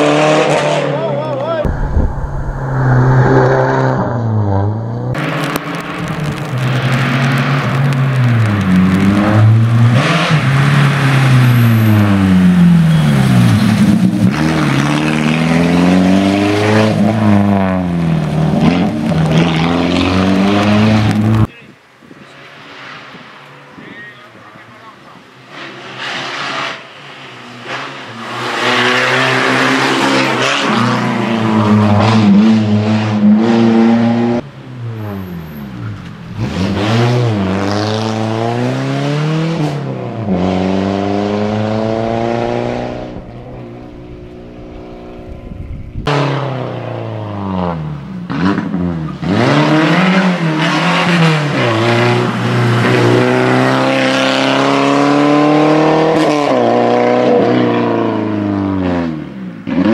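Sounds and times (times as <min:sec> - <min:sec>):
rally car engine revving: 0:00.0 - 0:21.5, 0:24.4 - 0:59.9.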